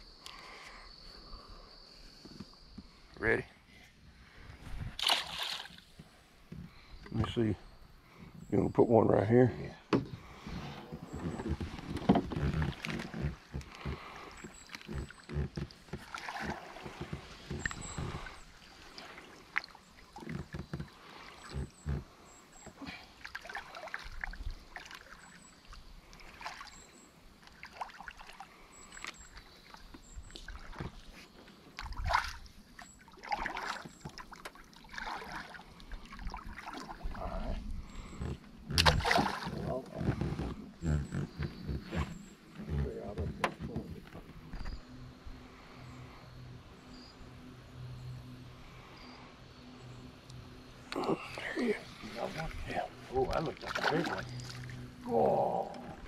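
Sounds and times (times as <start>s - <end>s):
paddle sloshing through water: 4.3s - 6.9s, 10.1s - 44.8s, 51.2s - 55.1s
water splashes: 4.9s - 6.0s, 10.2s - 42.2s, 51.0s - 56.0s
knocks against boat: 9.9s - 14.0s, 42.8s - 44.8s.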